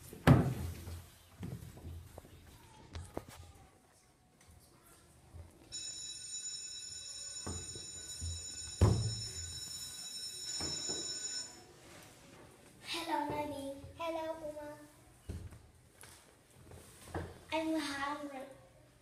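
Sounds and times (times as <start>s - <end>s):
high-pitched electronic ringing: 5.7s - 11.7s.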